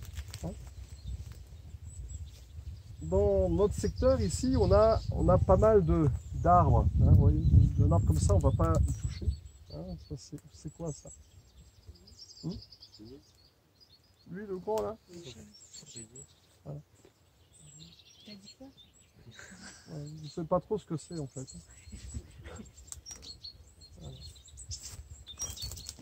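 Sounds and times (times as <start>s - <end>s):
wind rumbling on microphone: 0.0s - 12.6s, 21.5s - 26.0s
small birds chirping: 0.0s - 26.0s.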